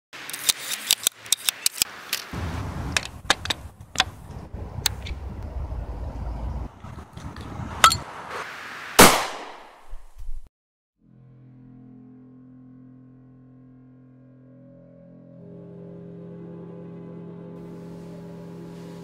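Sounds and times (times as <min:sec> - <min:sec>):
low rumble: 0:02.4 - 0:08.0
sharp handling clicks and knocks: 0:02.9 - 0:04.2.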